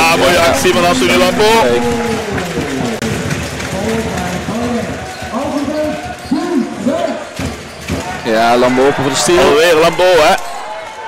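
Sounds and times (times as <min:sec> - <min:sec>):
people shouting in a hall: 0:00.0 - 0:03.7, 0:07.9 - 0:11.0.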